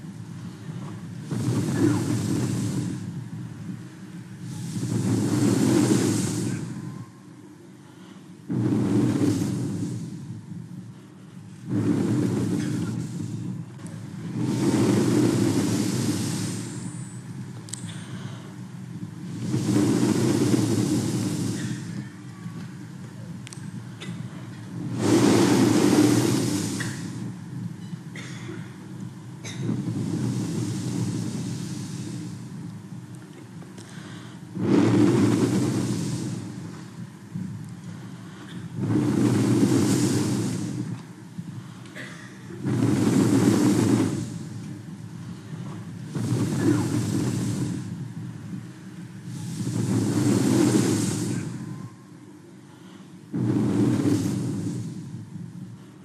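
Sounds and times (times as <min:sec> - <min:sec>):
breath blown into microphone: 0:17.8 - 0:22.2, 0:23.8 - 0:27.4, 0:29.4 - 0:32.7, 0:33.7 - 0:52.0, 0:52.6 - 0:56.0.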